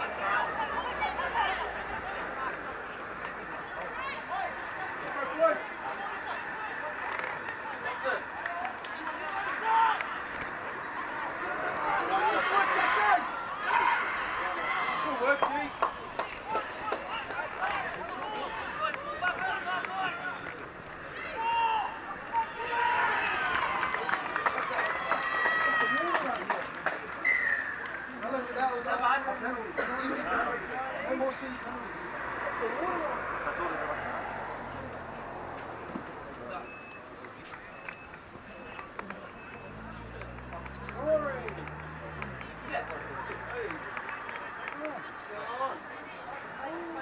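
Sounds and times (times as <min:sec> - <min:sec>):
people shouting and calling: 0:00.0 - 0:26.5
outdoor background noise: 0:00.0 - 0:47.0.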